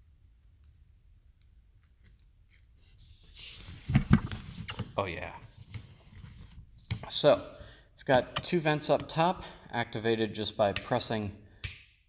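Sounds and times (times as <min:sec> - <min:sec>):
plastic film peeling hiss: 0:02.5 - 0:04.8.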